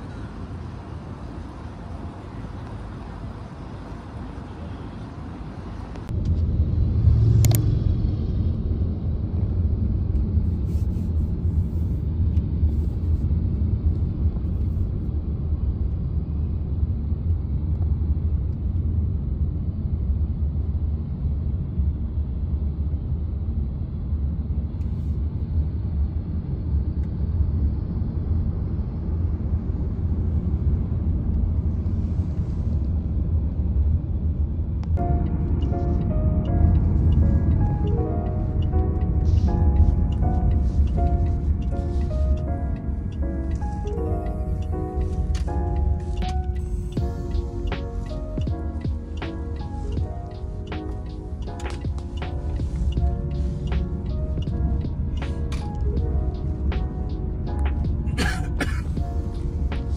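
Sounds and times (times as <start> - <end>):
car cabin road rumble: 0.0 - 19.1, 28.8 - 59.9
outdoor ambience: 0.0 - 59.9.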